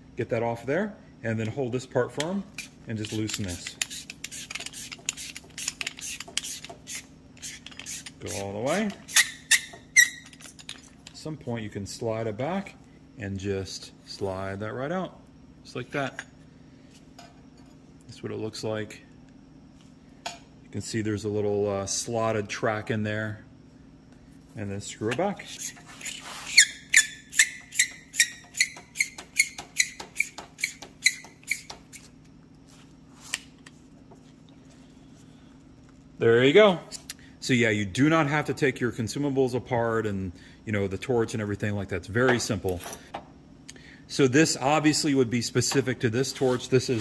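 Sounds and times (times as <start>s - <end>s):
torch sleeve squeaking: 2.5s - 11.0s, 24.8s - 32.2s.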